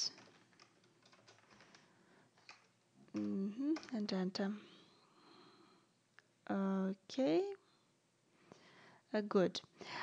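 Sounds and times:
computer keyboard keystrokes: 0.0 - 4.0.

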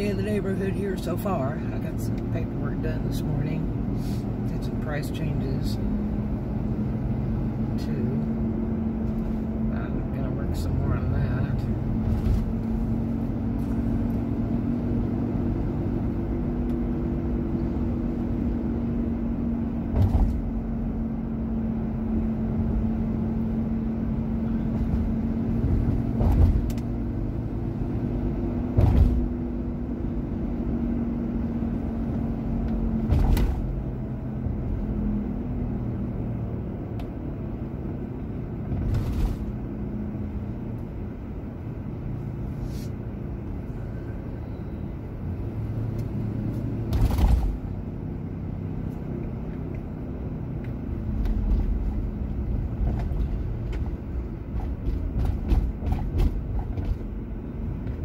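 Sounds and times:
engine and road drone: 0.0 - 58.0
short thumps: 19.9 - 20.5.

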